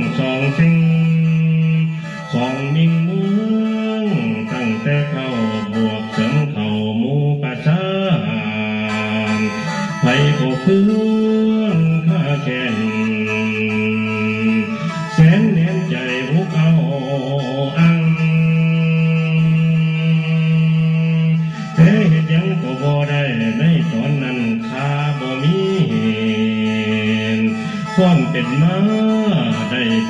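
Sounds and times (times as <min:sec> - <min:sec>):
free-reed mouth organ melody: 0:00.0 - 0:30.0.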